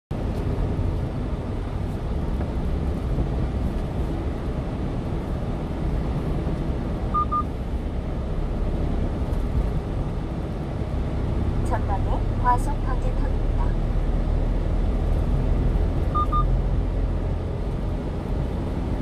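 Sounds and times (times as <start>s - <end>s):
truck engine rumbling: 0.1s - 19.0s
short electronic beeps: 7.2s - 7.5s, 16.1s - 16.5s.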